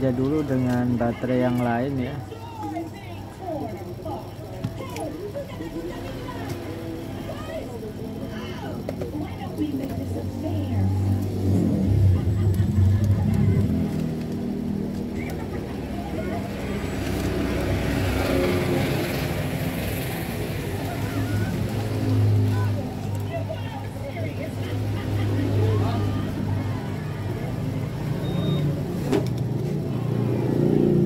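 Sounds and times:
vehicle engine running: 0.0s - 31.0s.

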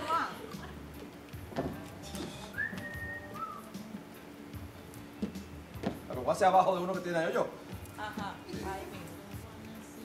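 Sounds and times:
quiet background music: 0.0s - 10.0s
person whistling: 2.4s - 3.8s.

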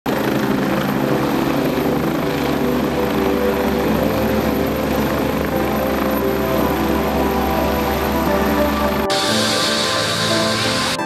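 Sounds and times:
helicopter hovering: 0.1s - 11.0s.

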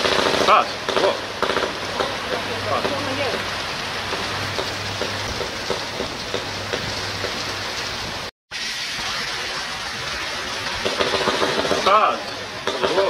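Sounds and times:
electrical arc hum: 0.0s - 13.0s
heavy rain: 0.0s - 13.0s.

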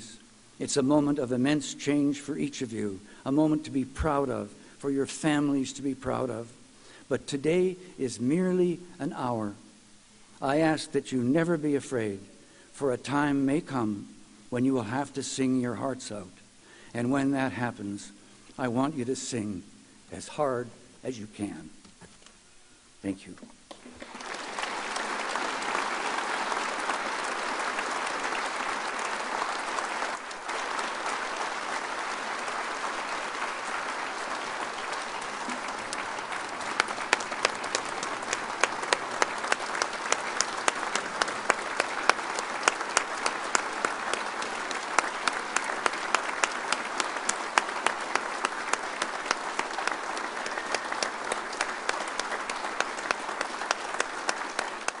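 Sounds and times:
audience applauding: 23.8s - 55.0s.

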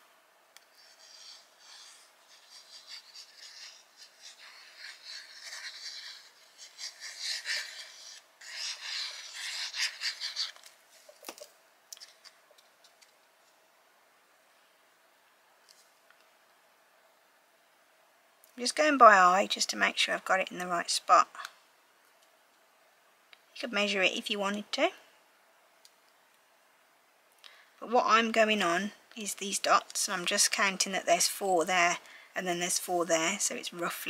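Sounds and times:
glue bottle tip scratching paper: 0.7s - 10.6s.

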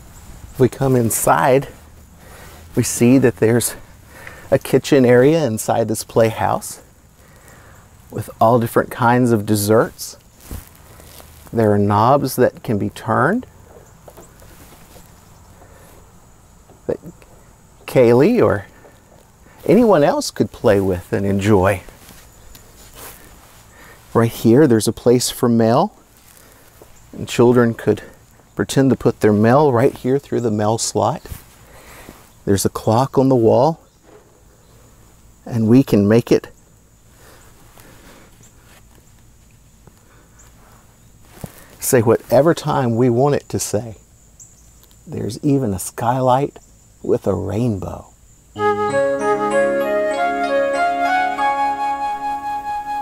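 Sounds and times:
low steady noise haze: 0.0s - 53.0s
man talking: 0.6s - 1.8s, 2.7s - 3.9s, 4.5s - 6.9s, 8.1s - 10.2s, 11.5s - 13.5s, 16.9s - 18.8s, 19.6s - 22.0s, 24.1s - 26.0s, 27.1s - 31.4s, 32.5s - 33.8s, 35.5s - 36.5s, 41.8s - 44.0s, 45.1s - 48.1s
soft faint ticks: 44.4s - 45.0s
faint high steady tone: 48.6s - 53.0s.

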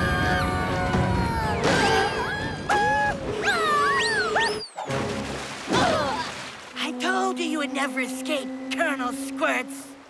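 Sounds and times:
background music: 0.0s - 3.3s
cartoon animal cries: 0.0s - 4.6s.

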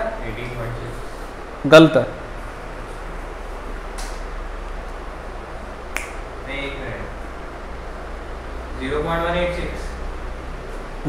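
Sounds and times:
low room hum: 0.0s - 11.0s
sharp snap-like click: 5.9s - 6.2s.

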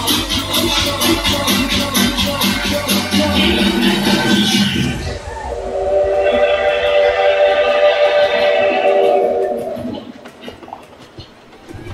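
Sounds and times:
dance track beat and bass: 0.0s - 10.2s
train horn chord: 5.6s - 9.9s.

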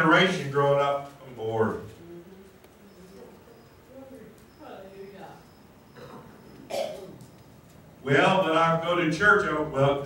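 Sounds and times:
person coughing: 6.0s - 7.2s.

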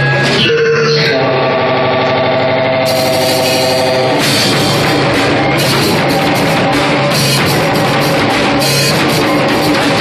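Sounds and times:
sustained electric guitar chord: 0.0s - 6.0s.

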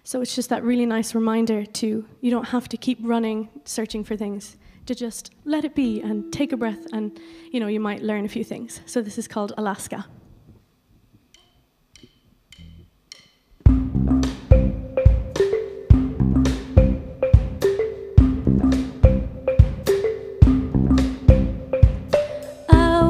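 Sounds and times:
drumsticks clicking: 11.3s - 13.7s
band playing instrumental intro: 13.7s - 22.7s.

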